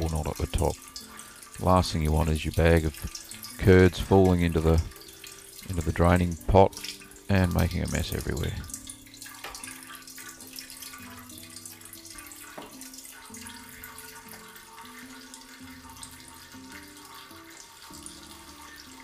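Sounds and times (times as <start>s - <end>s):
whey trickling into a pot: 0.0s - 19.0s.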